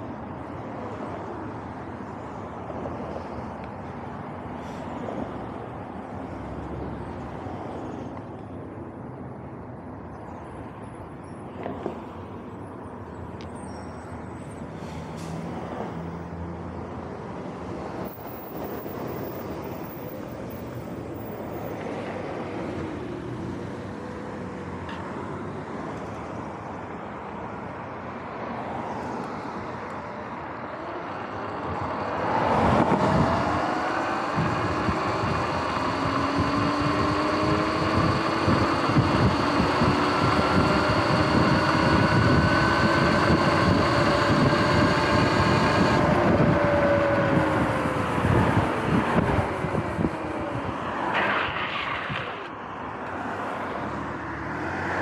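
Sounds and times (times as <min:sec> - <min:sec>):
road noise: 0:00.0 - 0:55.0
rushing wind: 0:29.6 - 0:55.0
electric motor whine: 0:32.4 - 0:50.2.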